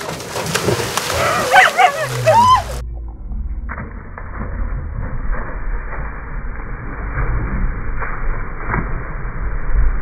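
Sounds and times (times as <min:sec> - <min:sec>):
people splashing into water: 0:00.0 - 0:02.8
high yelps: 0:01.2 - 0:02.8.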